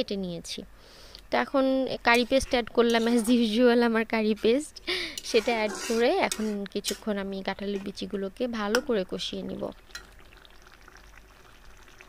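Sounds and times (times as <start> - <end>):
curry simmering with small pops: 6.2 - 12.0.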